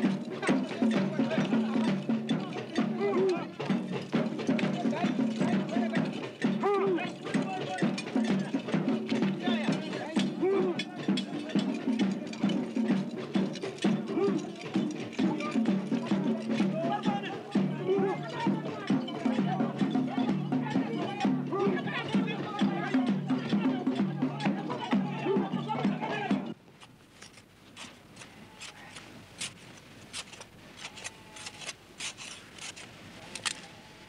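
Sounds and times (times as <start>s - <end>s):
rapid clicking percussion: 0.0s - 26.6s
voices calling out: 0.0s - 26.6s.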